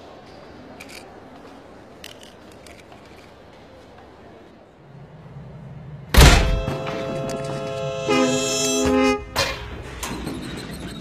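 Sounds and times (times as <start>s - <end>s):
loud heavy thunk: 6.1s - 7.1s
held musical tones: 6.5s - 9.9s.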